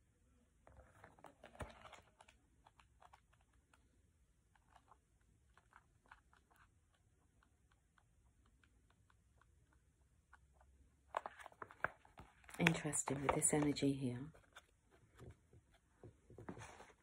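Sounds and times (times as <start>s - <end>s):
book pages flicked: 1.1s - 3.4s, 11.1s - 14.6s.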